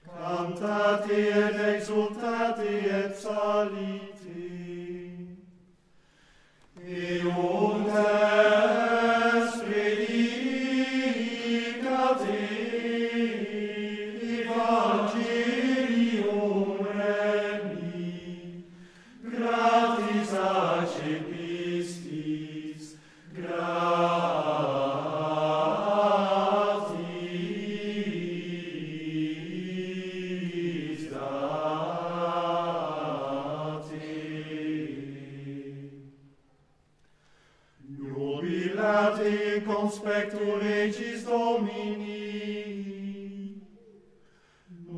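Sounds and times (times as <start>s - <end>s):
men's choir chanting in unison: 0.0s - 5.4s, 6.8s - 36.0s, 37.8s - 43.9s.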